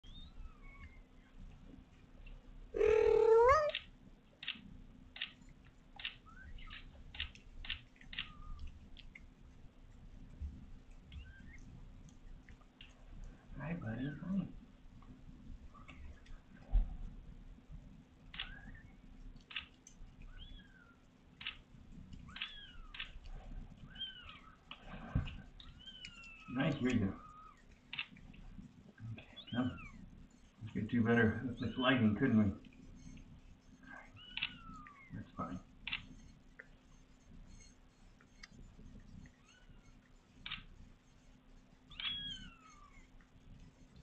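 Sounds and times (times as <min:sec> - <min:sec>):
kitten mewing: 0:02.8 - 0:03.8
kitten mewing cry: 0:02.8 - 0:03.8, 0:41.9 - 0:43.0
short high kitten squeaks: 0:02.8 - 0:03.8, 0:41.9 - 0:43.0.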